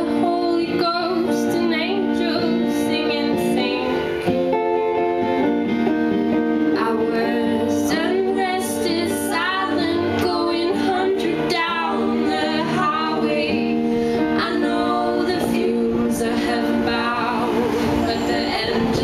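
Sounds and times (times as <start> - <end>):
woman singing: 0.0 - 4.3, 6.7 - 19.0
acoustic guitar strumming: 0.0 - 19.0.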